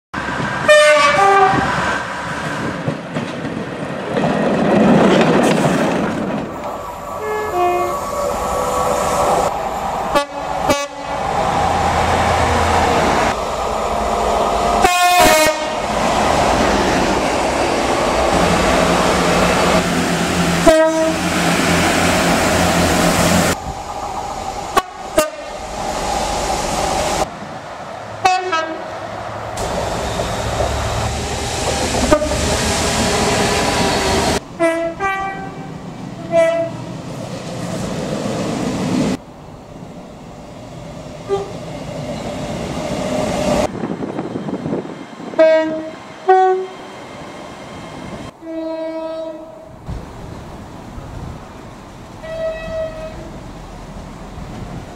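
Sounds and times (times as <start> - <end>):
train rumble: 0.2 - 54.9
two-tone train horn: 0.6 - 1.7, 7.2 - 8.3, 10.1 - 11.2, 14.8 - 15.8, 20.6 - 21.3, 24.8 - 25.5, 28.2 - 28.9, 32.0 - 32.5, 34.6 - 36.8, 41.3 - 41.6, 45.4 - 46.8, 48.4 - 49.7, 52.2 - 53.3
train horn blasts: 0.7 - 1.7, 7.2 - 8.2, 10.1 - 11.2, 14.8 - 15.8, 20.6 - 21.3, 24.8 - 25.5, 28.2 - 28.9, 32.1 - 32.5, 34.6 - 36.8, 41.3 - 41.6, 45.4 - 46.8, 48.4 - 49.7, 52.2 - 53.3.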